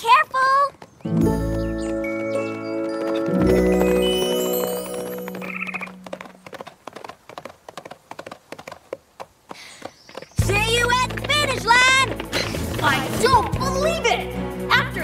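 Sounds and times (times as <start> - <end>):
cartoon hoofbeats: 0.0 - 14.3
cheerful music: 1.1 - 6.1, 10.5 - 15.0.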